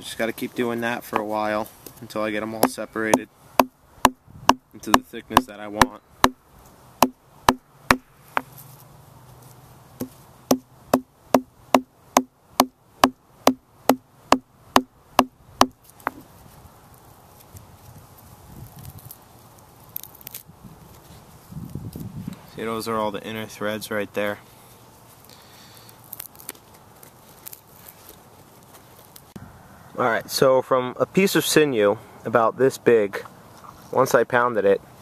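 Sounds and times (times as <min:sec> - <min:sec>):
faint handling noise: 0:15.8 - 0:22.7, 0:24.2 - 0:29.4.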